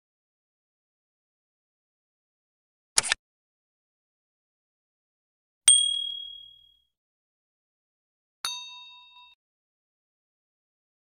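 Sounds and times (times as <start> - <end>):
bell-like ding: 5.7 - 6.9, 8.5 - 9.4.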